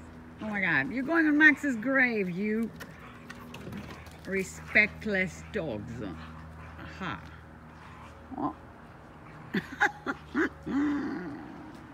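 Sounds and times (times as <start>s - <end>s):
dogs play-wrestling: 0.2s - 11.9s.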